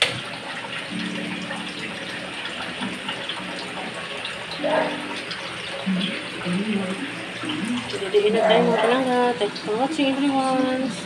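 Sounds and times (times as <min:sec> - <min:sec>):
murmur of voices: 0:04.5 - 0:11.0.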